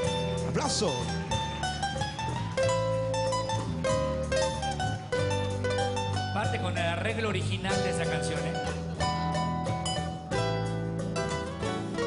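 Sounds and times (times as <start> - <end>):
acoustic lead guitar picking: 0.0 - 12.0
guitar accompaniment: 0.0 - 12.0
steady bass: 0.0 - 12.0.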